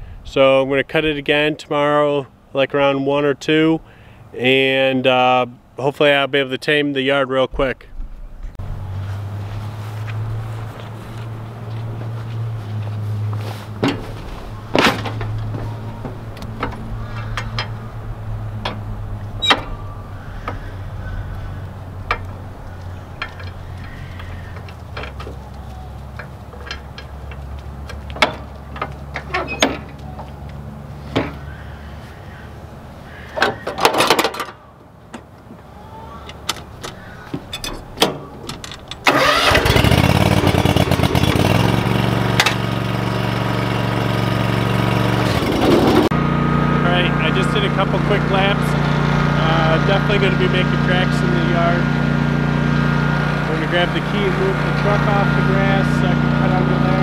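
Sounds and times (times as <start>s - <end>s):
mower engine running: 8.6s - 30.0s, 38.8s - 57.0s.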